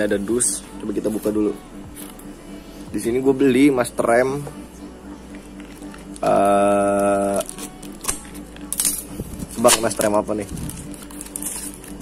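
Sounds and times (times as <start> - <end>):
plastic crinkling: 7.0 - 12.0
scissors snipping tape: 7.3 - 9.0.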